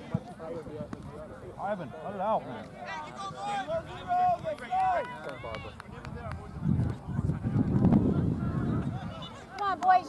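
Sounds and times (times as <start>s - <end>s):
wind rumbling on microphone: 5.4s - 9.4s.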